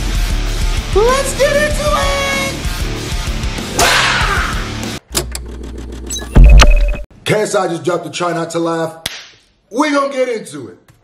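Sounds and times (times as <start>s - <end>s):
short high beep: 6.1s - 7.1s.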